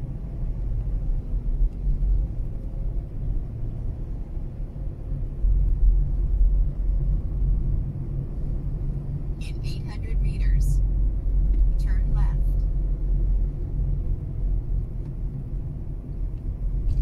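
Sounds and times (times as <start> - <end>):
car engine rumble: 0.0 - 17.0
tyres on road: 0.0 - 17.0.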